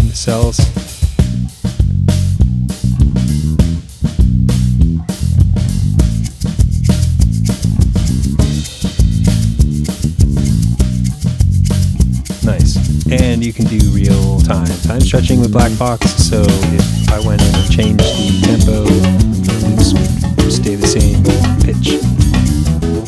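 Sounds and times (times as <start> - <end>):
drum and percussion loops: 0.0 - 23.0
repeating bass line: 1.2 - 23.0
tapping pad cells: 16.7 - 22.1.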